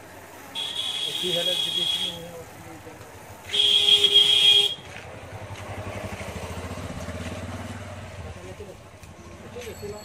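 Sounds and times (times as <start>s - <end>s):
vehicle horn: 0.6s - 2.3s, 3.5s - 4.9s.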